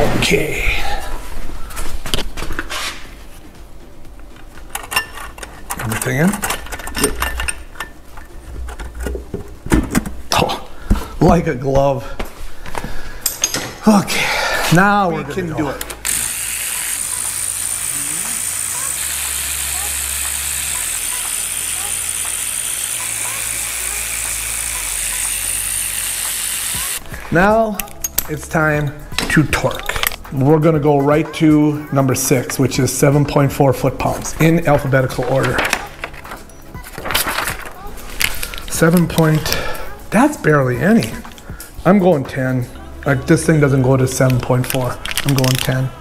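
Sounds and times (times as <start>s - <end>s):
machine noise with hum and hiss: 16.0s - 27.6s.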